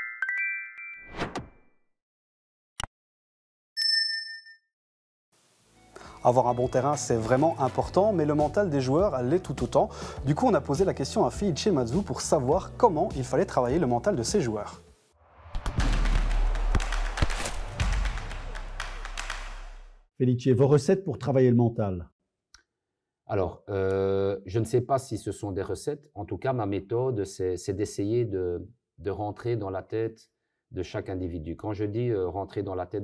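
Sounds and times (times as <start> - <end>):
bright high chime: 3.8 - 4.7.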